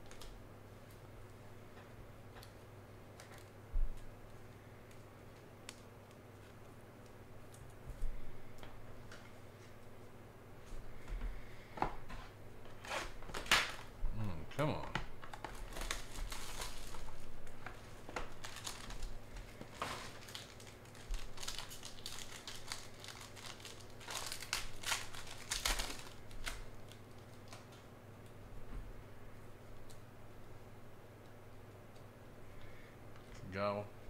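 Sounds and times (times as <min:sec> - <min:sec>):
plastic crinkling and rustling: 0:12.1 - 0:14.0, 0:14.8 - 0:27.9.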